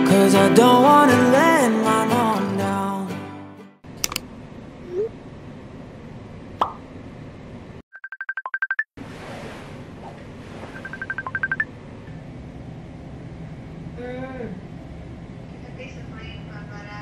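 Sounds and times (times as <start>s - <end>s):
sharp click: 4.0s - 4.3s
electronic alarm beeping: 10.8s - 11.7s.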